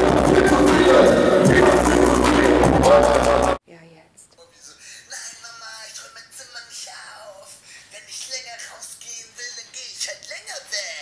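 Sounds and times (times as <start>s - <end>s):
crowd noise: 0.0s - 3.6s
live hip-hop concert music: 0.0s - 3.6s.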